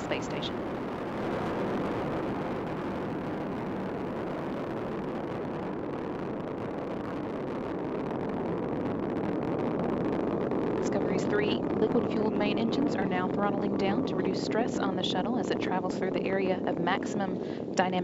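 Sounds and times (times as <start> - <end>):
rushing rocket engines: 0.0 - 17.8.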